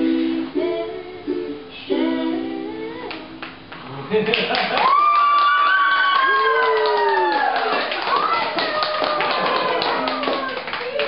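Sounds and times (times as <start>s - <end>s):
group applauding: 3.4s - 11.0s
high voices cheering: 4.7s - 11.0s.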